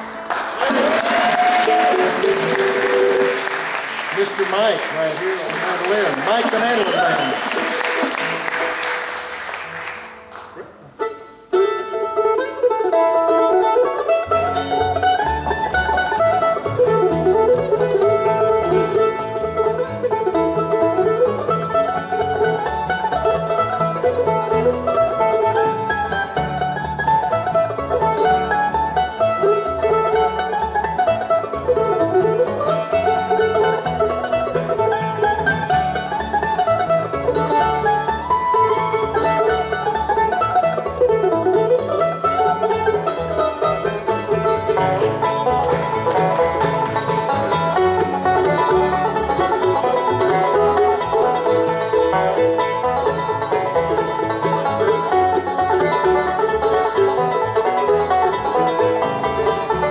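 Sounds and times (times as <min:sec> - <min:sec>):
bluegrass band playing: 0:00.0 - 0:59.9.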